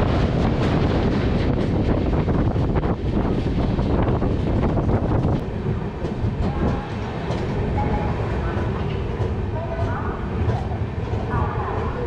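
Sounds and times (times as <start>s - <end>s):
train rumble with rail clatter: 0.0s - 12.0s.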